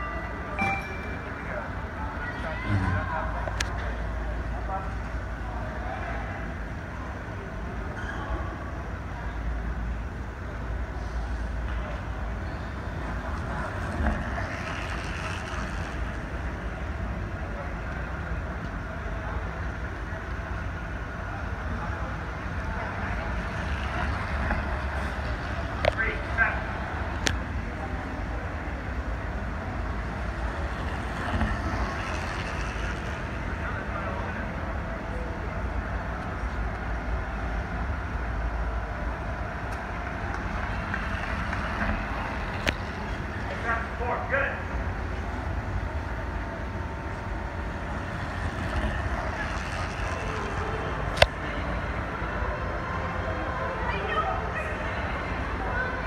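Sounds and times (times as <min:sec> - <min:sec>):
background chatter of people: 0:00.0 - 0:56.0
steady low rumble: 0:08.7 - 0:56.0.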